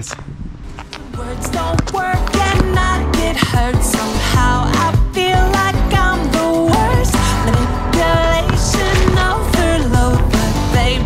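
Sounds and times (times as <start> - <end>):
music with drum beat and bass: 1.2 - 11.0.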